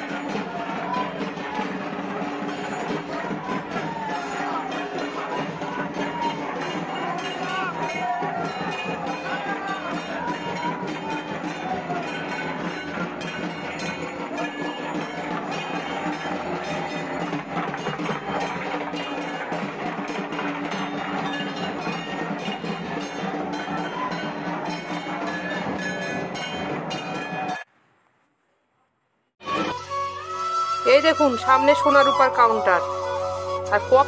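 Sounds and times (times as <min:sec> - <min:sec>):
drums played fast: 0:00.0 - 0:27.6.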